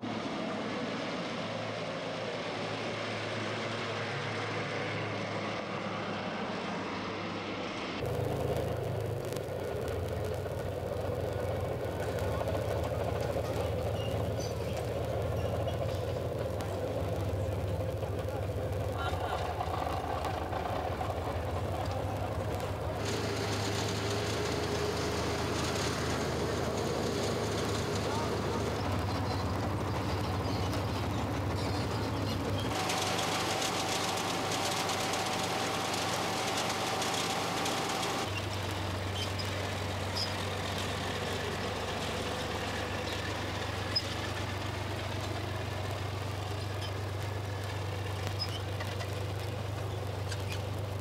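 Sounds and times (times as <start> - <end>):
engine running steadily: 0.0 - 51.0
indistinct voices: 8.1 - 38.2.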